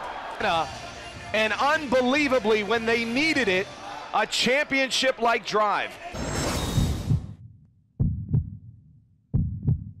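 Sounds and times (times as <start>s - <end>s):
heartbeat thumps: 7.0s - 10.0s.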